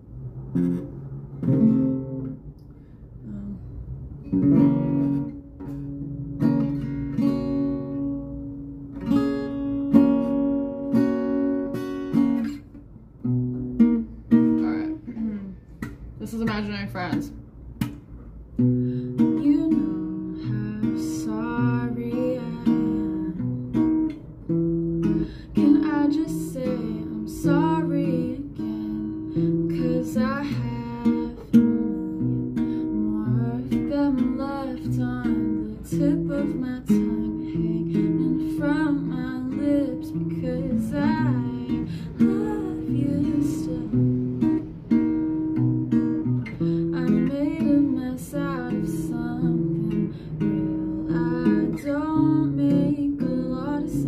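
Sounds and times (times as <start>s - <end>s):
acoustic guitar chords: 0.0s - 54.0s
woman singing: 19.2s - 23.8s, 25.0s - 44.5s, 46.8s - 54.0s.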